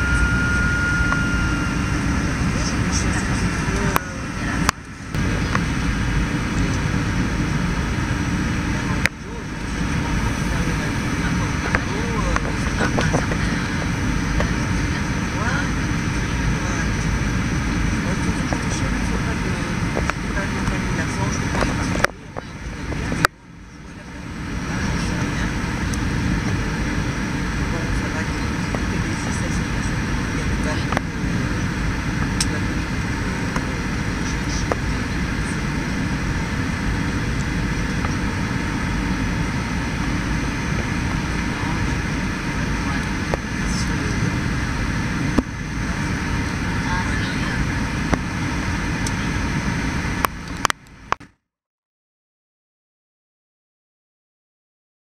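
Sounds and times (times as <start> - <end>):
airliner engines and airflow rumble: 0.0 - 51.2.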